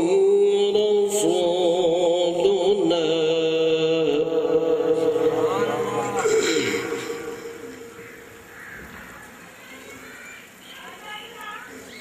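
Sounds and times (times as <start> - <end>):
man reciting through microphone: 0.0 - 7.8
faint bird calls: 6.1 - 12.0.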